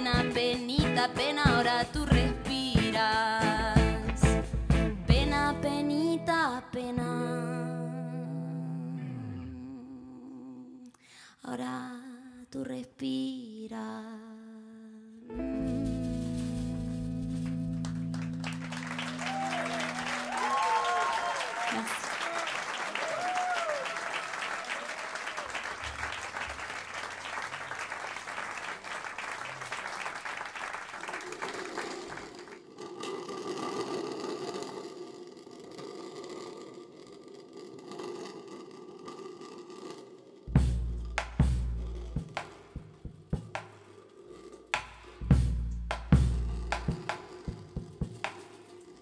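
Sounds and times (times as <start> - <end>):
stage sounds: 15.4 - 32.6
audience applauding and cheering: 17.7 - 32.7.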